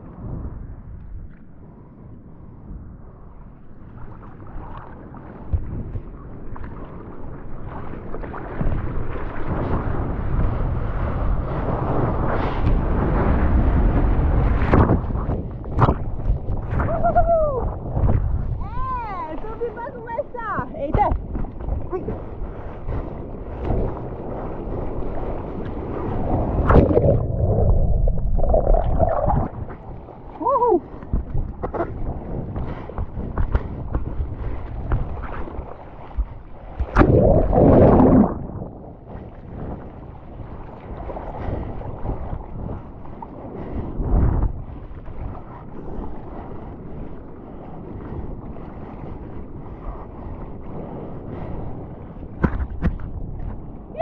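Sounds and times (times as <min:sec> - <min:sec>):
wind buffeting microphone: 0:00.0 - 0:54.0
water rushing and splashing: 0:13.4 - 0:43.3
loud surge of water: 0:26.0 - 0:30.0, 0:36.8 - 0:39.5.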